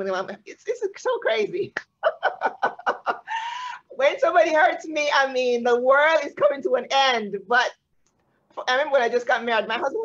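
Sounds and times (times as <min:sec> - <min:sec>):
women laughing: 0:02.0 - 0:03.8.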